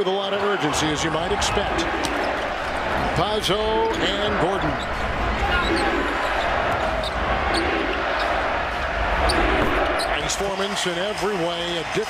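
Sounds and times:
crowd din: 0:00.0 - 0:12.0
sneaker squeaks: 0:04.8 - 0:08.3.

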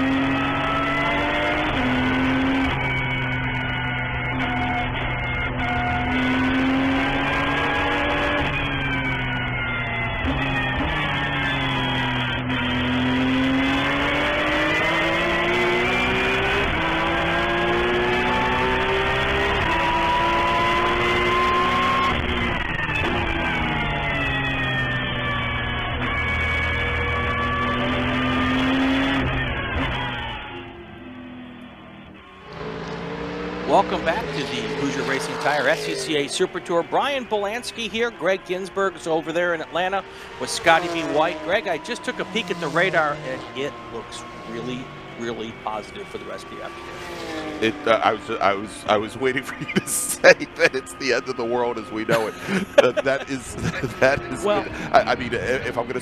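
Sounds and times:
racing car engine shifting gears: 0:00.0 - 0:56.0.

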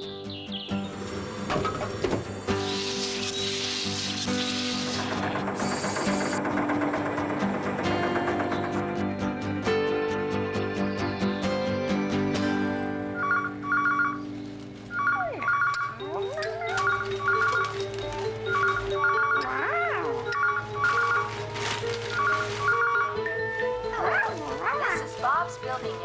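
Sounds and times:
light background music: 0:00.0 - 0:26.0
telephone ringing: 0:13.1 - 0:25.6.

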